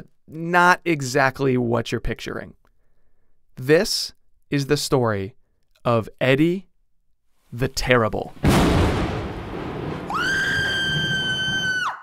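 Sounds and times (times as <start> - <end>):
high-pitched scream: 10.1 - 12.0.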